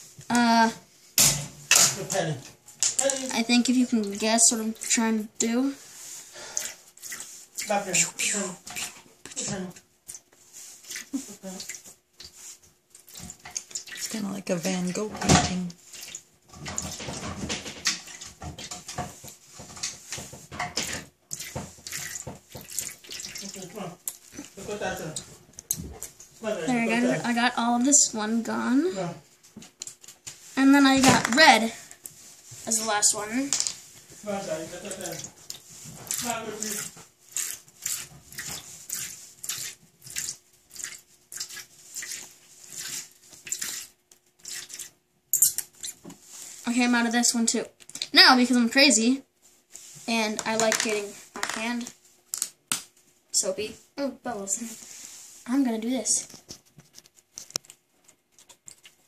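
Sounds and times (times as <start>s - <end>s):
squeeze bottle squirting: 36.1s - 46.0s.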